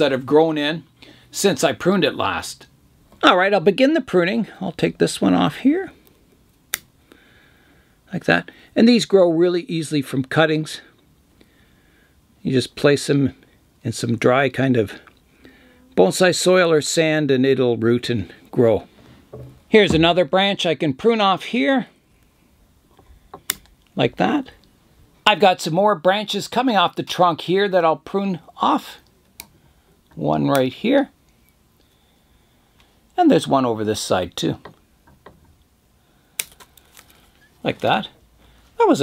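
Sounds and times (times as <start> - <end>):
branch snapping: 36.4 - 37.2.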